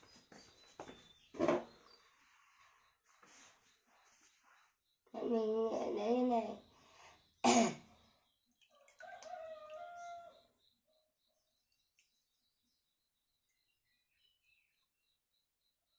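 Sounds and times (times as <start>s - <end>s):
person coughing: 7.4s - 7.9s.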